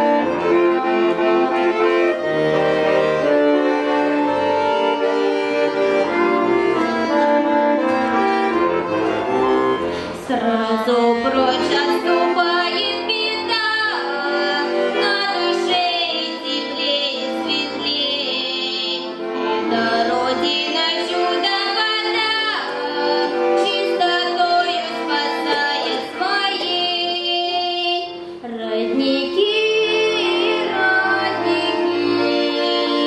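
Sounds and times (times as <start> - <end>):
instrumental accompaniment: 0.0 - 33.0
girl singing into a microphone: 19.9 - 33.0.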